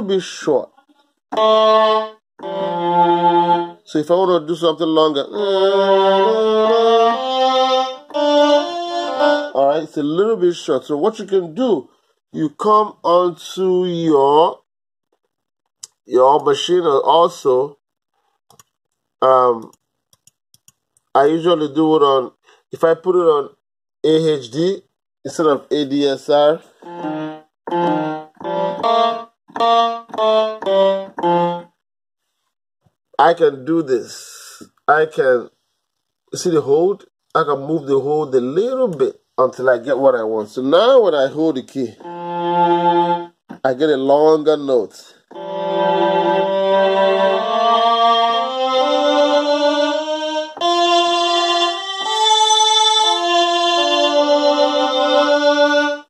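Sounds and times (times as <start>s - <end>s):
keyboard chord struck: 1.3s - 3.8s, 6.6s - 9.6s, 26.8s - 31.8s, 42.0s - 43.3s, 45.3s - 55.6s
sustained keyboard notes: 1.3s - 10.6s, 25.6s - 31.8s, 40.8s - 43.4s, 45.3s - 56.0s.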